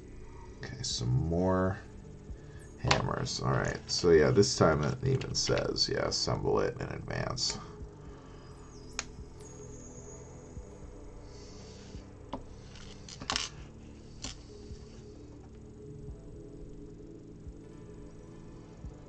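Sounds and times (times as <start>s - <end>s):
low background music: 0.0s - 19.0s.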